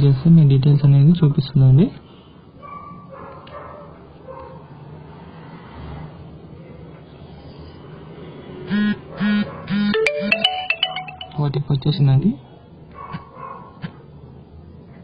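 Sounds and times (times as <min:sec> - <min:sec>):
phone notification beeps: 0:09.9 - 0:11.4
rising run of notes: 0:09.9 - 0:11.5.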